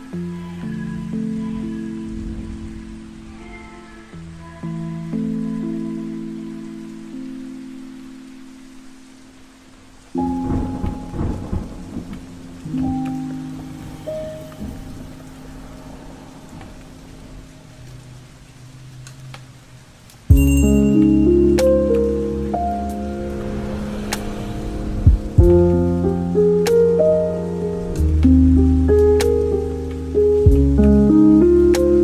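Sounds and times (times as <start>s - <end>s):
steady rain: 0.0s - 32.0s
lofi keyboard chords: 10.0s - 15.4s, 20.3s - 32.0s
thunderclap crackling and rumbling: 10.2s - 20.1s, 21.6s - 32.0s.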